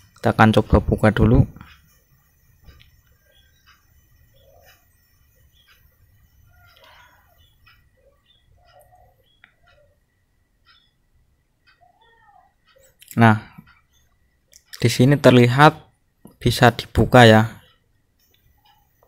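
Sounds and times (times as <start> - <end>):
faint short calls and ticks: 0.0 - 16.6, 17.6 - 19.0.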